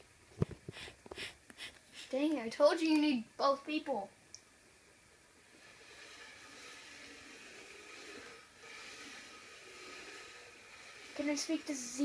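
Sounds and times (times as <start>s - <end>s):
planchette scraping across board: 5.4s - 12.0s.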